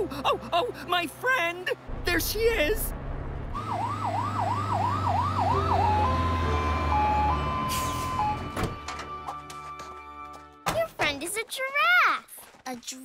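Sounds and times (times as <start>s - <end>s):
cartoon fire truck siren: 3.6s - 9.3s.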